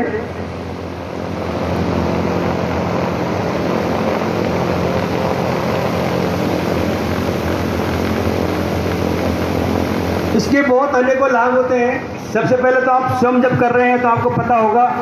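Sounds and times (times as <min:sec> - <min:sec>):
loud rushing noise: 0:00.0 - 0:15.0
low hum: 0:00.0 - 0:15.0.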